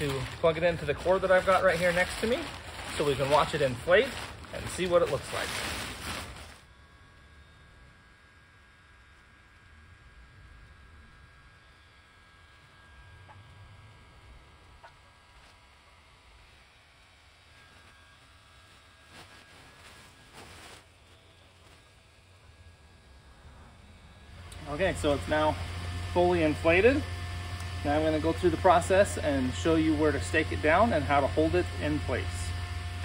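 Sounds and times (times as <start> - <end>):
fabric rustling: 0.0 - 6.6, 19.0 - 21.2
blower fan humming: 0.0 - 33.0.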